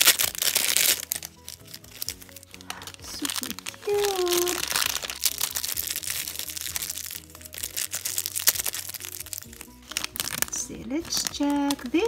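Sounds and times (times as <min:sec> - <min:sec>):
plastic bag crinkling: 0:00.0 - 0:12.0
soft background music: 0:00.0 - 0:12.0.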